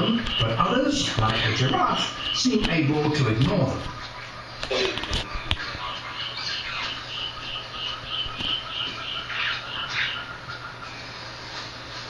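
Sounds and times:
wildlife chirping through speaker: 0.0 - 11.1
harsh rasping calls: 0.0 - 11.5.

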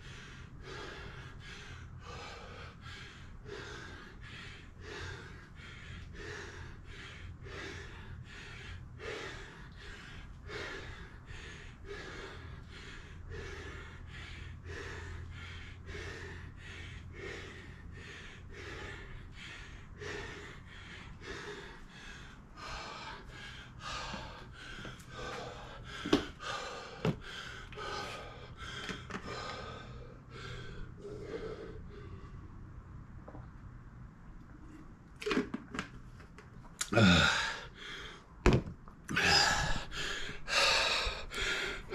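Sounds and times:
man panting hard: 0.0 - 32.8, 36.8 - 38.4, 39.1 - 41.9.

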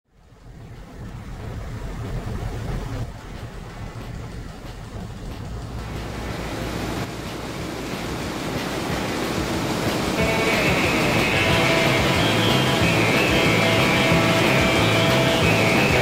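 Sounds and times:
wind buffeting microphone: 0.1 - 16.0
music: 8.0 - 16.0.

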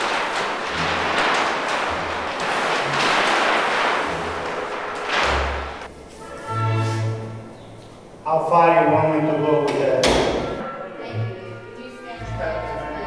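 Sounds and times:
paper sheets rustling: 0.0 - 8.2.

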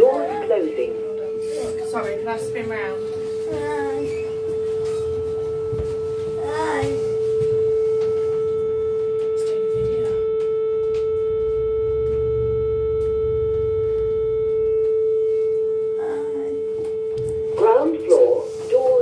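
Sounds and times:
lift high hum: 0.0 - 19.0.

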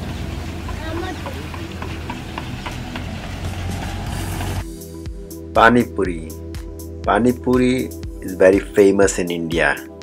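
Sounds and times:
low traffic rumble: 0.0 - 4.7.

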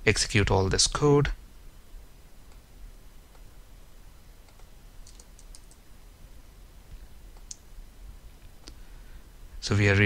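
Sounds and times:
low steady hum: 0.0 - 10.0
keyboard and mouse clicks: 4.4 - 5.8, 7.3 - 7.6.

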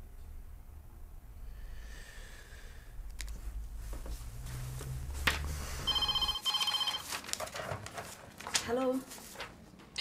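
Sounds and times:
telephone ringing: 5.9 - 7.1.

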